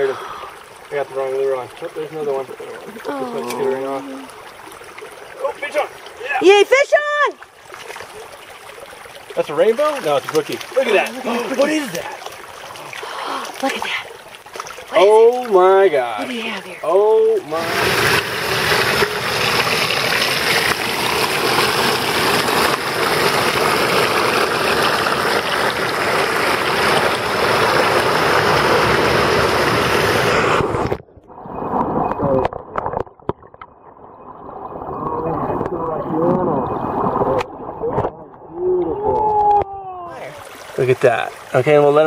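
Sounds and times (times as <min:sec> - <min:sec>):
stream water rushing and splashing: 0:00.0 - 0:33.0, 0:34.1 - 0:42.0.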